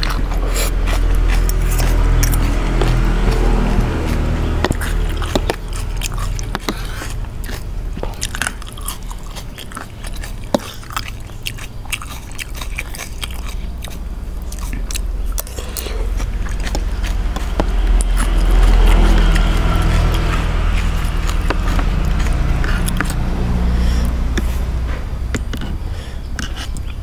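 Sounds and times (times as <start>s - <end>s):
wet mouth sounds: 0.0s - 25.8s, 26.4s - 27.0s
chewing and crunching: 0.0s - 27.0s.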